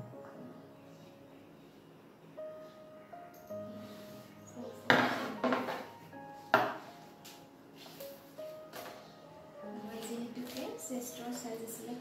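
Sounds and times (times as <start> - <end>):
soft background music: 0.0 - 12.0
hard objects knocking on table: 4.9 - 5.9, 6.5 - 6.8.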